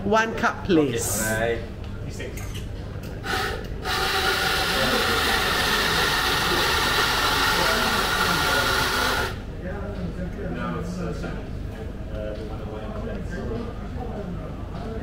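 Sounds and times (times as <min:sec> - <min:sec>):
coffee grinder grinding beans: 0:03.3 - 0:09.4.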